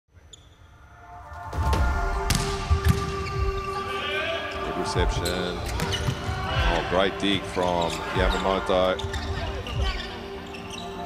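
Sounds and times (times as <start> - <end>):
background music: 0.1 - 11.0.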